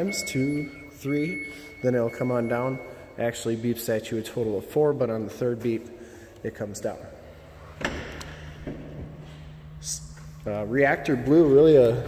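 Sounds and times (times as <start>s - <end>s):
low steady hum: 0.0s - 12.0s
liftgate closing and latching: 7.6s - 10.3s.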